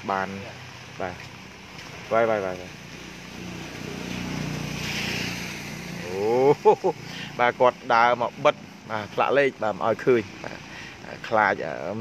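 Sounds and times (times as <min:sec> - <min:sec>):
vehicle passing on wet street: 0:00.0 - 0:12.0.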